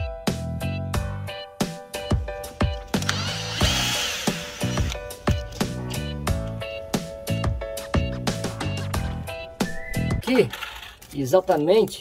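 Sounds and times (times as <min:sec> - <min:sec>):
music with steady beat: 0:00.0 - 0:10.2
cordless drill whining: 0:03.0 - 0:05.0.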